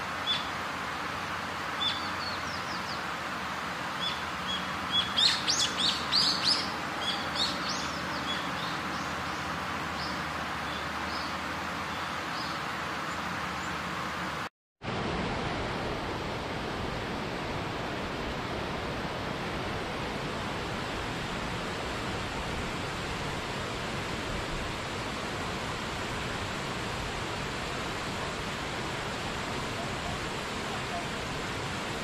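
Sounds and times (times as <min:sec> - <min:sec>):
waterfall rushing: 0:00.0 - 0:32.0.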